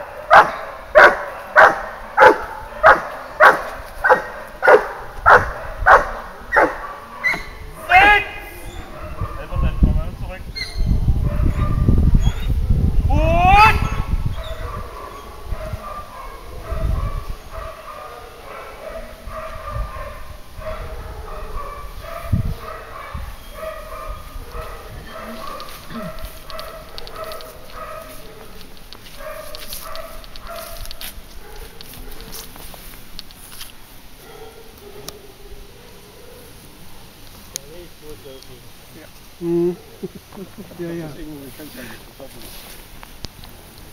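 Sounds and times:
dog barking: 0.0s - 7.6s, 8.8s - 9.7s, 11.2s - 12.8s, 14.4s - 32.5s, 34.2s - 37.1s.

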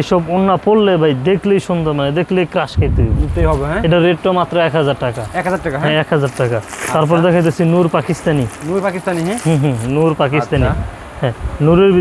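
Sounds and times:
man speaking: 0.0s - 12.0s
low rumble: 2.8s - 3.9s.

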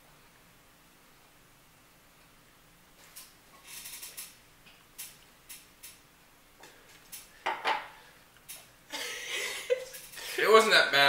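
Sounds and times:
glass set down on table: 7.5s - 7.9s.

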